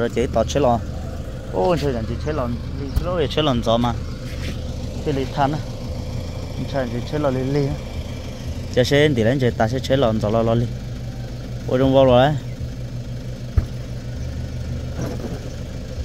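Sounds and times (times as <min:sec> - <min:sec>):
people talking: 0:00.0 - 0:00.9, 0:01.5 - 0:04.0, 0:05.0 - 0:05.7, 0:06.6 - 0:07.8, 0:08.7 - 0:10.7, 0:11.7 - 0:12.4
truck engine idling: 0:00.0 - 0:16.0.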